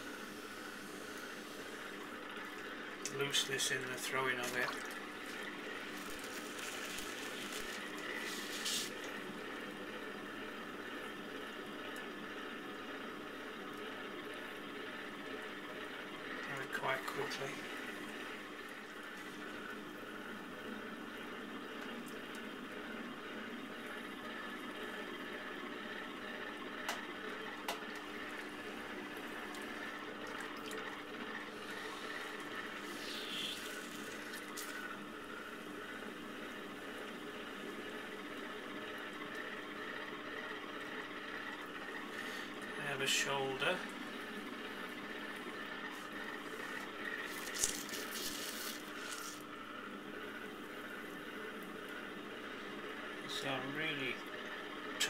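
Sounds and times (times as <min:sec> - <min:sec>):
potter's wheel humming: 0:00.0 - 0:55.0.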